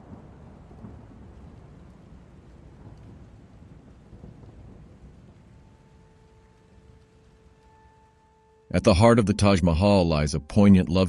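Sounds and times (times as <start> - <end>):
distant thunder rumbling: 0.0 - 8.0
soft rain hiss: 0.0 - 11.0.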